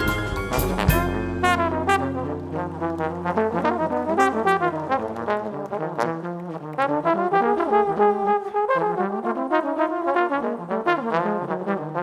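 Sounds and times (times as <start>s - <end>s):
drums: 0.0s - 5.7s
jazz band playing: 0.0s - 12.0s
piano: 0.0s - 12.0s
trombones playing: 0.0s - 12.0s
upright bass low note: 0.1s - 6.0s.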